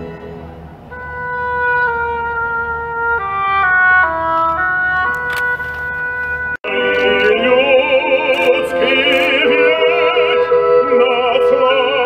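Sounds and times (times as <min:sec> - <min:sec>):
orchestral music: 0:00.0 - 0:12.0
operatic voice singing: 0:06.6 - 0:12.0.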